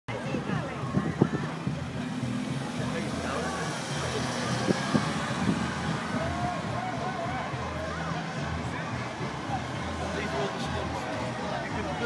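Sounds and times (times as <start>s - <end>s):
crowd chatter: 0.1s - 12.0s
slow vehicles driving past: 0.1s - 12.0s.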